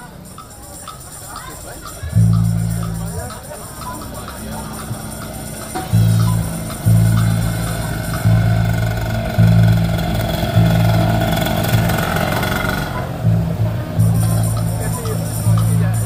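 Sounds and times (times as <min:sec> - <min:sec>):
drums: 0:00.0 - 0:16.0
loud bass notes: 0:01.9 - 0:16.0.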